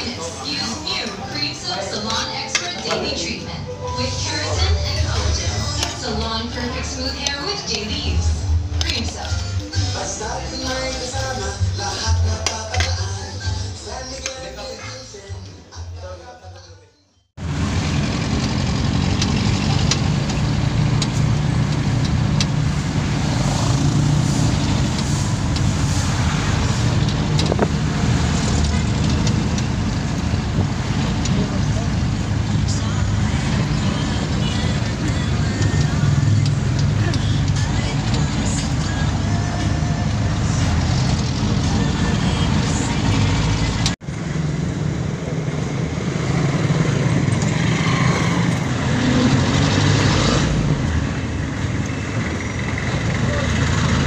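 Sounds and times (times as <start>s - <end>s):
voices in background: 0.0s - 11.5s
vehicle engine and road rumble: 0.0s - 15.6s, 17.3s - 54.0s.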